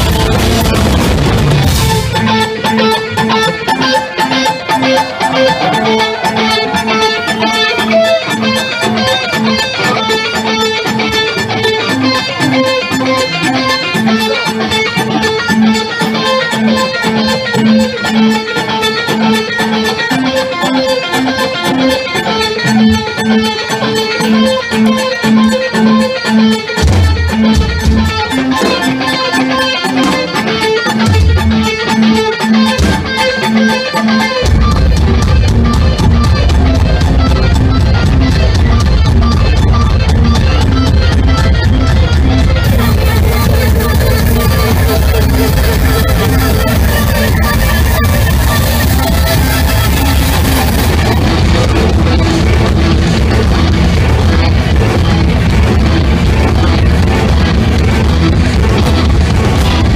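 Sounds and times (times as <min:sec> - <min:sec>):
electric guitar riff: 0:00.0 - 0:59.9.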